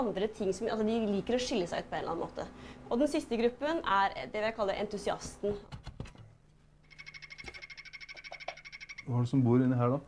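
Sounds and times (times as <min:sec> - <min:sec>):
faint steady hum: 0:00.0 - 0:10.0
frog high-pitched trill: 0:06.9 - 0:09.2.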